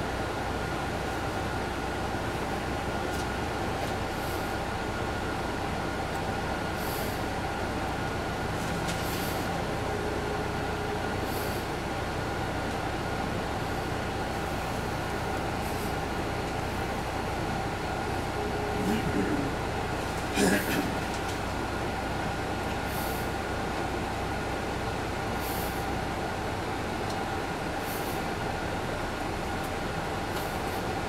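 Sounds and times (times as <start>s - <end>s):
bus diesel engine drone: 0.0s - 31.0s
faint steady whine: 0.1s - 31.0s
road noise: 0.1s - 31.0s.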